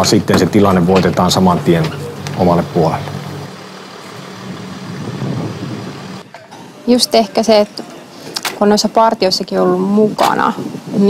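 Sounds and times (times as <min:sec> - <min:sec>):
vehicle engine driving past: 0:01.2 - 0:06.3.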